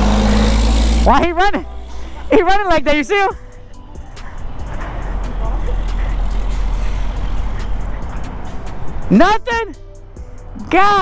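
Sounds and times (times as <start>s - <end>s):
heavy road traffic: 0.0s - 11.0s
truck passing: 0.0s - 11.0s.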